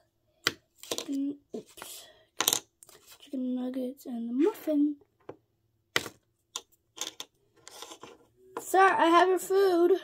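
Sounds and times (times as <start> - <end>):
plastic toy pieces clicking: 6.5 - 8.0.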